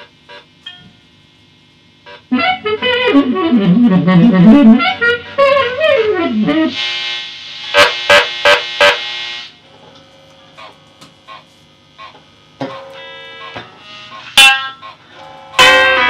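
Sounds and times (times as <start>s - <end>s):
electric guitar chords ringing: 0.5s - 7.0s, 12.0s - 16.0s.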